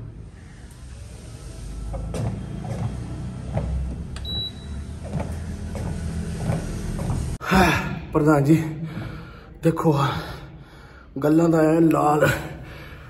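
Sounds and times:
short high beep: 0:04.2 - 0:04.8.

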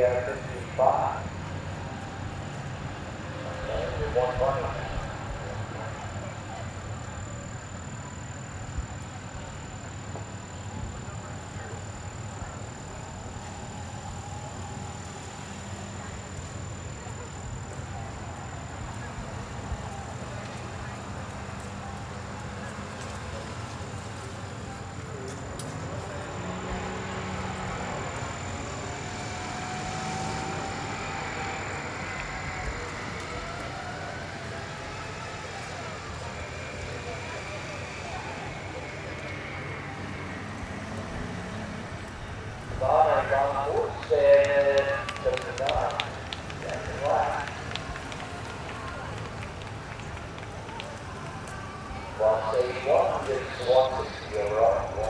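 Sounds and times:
faint distant talking: 0:00.0 - 0:55.0
outdoor background noise: 0:00.0 - 0:55.0
loud nearby speech: 0:02.9 - 0:55.0.

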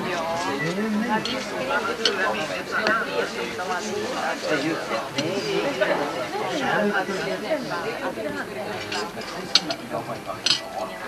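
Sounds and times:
indistinct conversation: 0:00.0 - 0:11.0
tableware clinking: 0:10.4 - 0:11.0.

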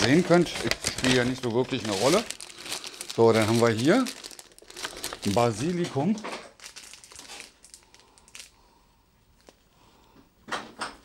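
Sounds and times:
plastic sleeve crinkling: 0:00.0 - 0:08.7.

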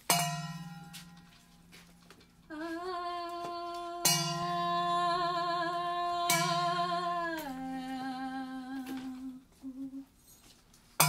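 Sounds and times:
woman humming: 0:02.5 - 0:10.2.

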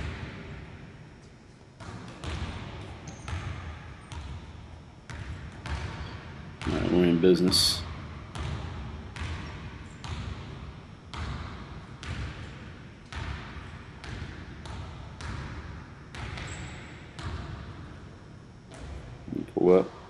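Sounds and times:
basketball bouncing on hardwood: 0:01.8 - 0:07.0, 0:07.8 - 0:17.7, 0:18.7 - 0:19.1.

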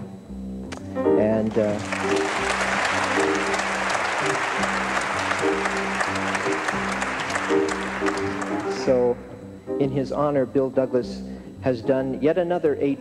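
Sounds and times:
upright bass: 0:00.0 - 0:13.0
piano notes: 0:00.8 - 0:11.1
audience applauding: 0:01.5 - 0:09.2.

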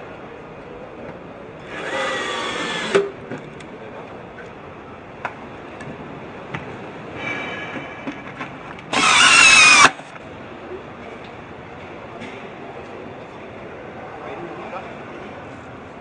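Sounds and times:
small electric motor whining: 0:08.9 - 0:10.0.

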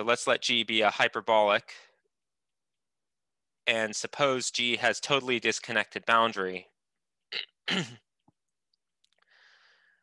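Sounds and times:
man clearing his throat: 0:07.3 - 0:08.1.

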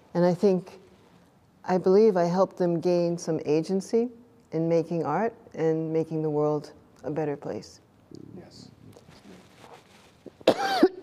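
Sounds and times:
woman coughing: 0:10.4 - 0:11.0.

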